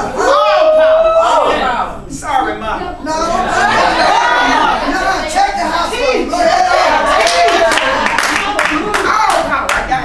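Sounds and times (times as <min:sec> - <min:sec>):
audience clapping: 0:07.1 - 0:10.0.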